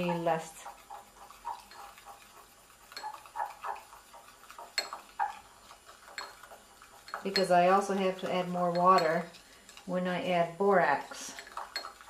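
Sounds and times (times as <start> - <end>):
soft wet stirring: 0.0 - 12.0
stick tapping glass bowl: 2.9 - 5.4, 6.0 - 9.4, 11.4 - 12.0.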